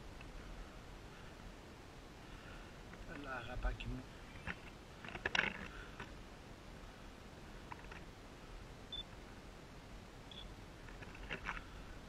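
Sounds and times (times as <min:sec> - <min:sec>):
camera beep: 0:10.3 - 0:10.5.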